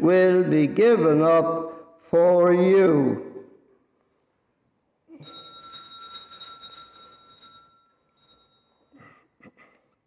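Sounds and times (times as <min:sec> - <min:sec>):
altar bells ringing: 0:05.2 - 0:09.1.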